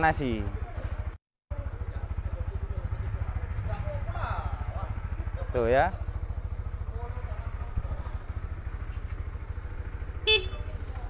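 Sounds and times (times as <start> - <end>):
motorcycle engine idling: 0.0 - 11.0
short horn beep: 10.3 - 10.7.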